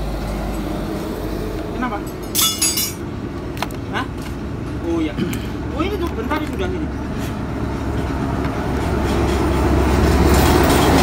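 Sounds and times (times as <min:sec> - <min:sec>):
road traffic rumble: 0:00.0 - 0:11.0
sharp clinking: 0:02.1 - 0:03.0.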